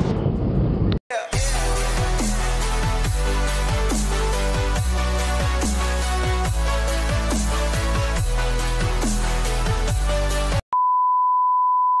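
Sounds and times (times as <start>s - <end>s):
electronic music with sliding bass: 1.4s - 10.6s.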